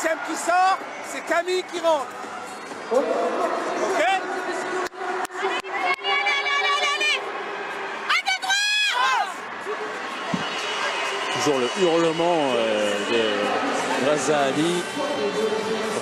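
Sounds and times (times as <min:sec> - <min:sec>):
arena crowd noise: 0:00.0 - 0:16.0
players' voices: 0:00.0 - 0:16.0
woman's high-pitched shout: 0:08.1 - 0:09.4.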